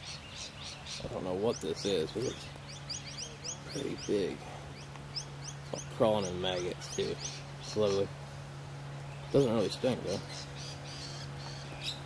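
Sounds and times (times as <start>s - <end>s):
birds chirping: 0.0s - 12.0s
steady low hum: 0.0s - 12.0s.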